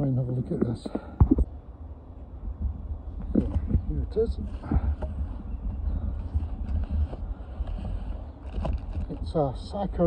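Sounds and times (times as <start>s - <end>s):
wind buffeting microphone: 0.5s - 10.0s.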